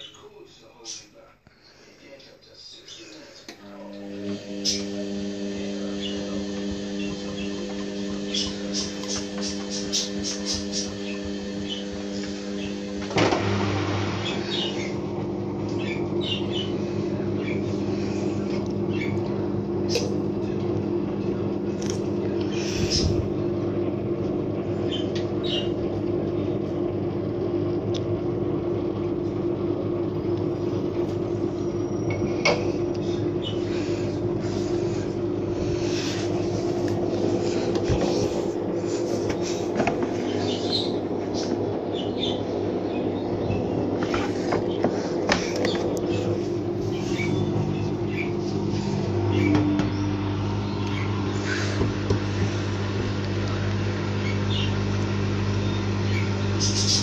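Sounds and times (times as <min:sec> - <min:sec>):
washing machine motor humming: 0:00.0 - 0:57.0.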